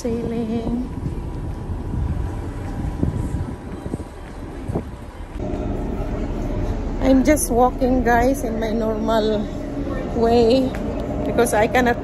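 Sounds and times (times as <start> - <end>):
steady multi-tone hum: 0.0 - 12.0
wind buffeting microphone: 0.0 - 12.0.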